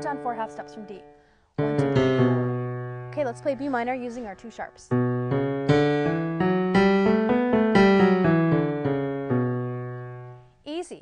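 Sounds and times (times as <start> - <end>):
piano playing a scale: 0.0 - 10.5
held low piano note: 1.6 - 3.6.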